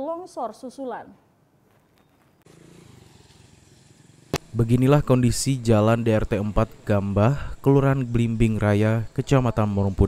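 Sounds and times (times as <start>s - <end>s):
faint motorcycle engines running: 2.0s - 10.0s.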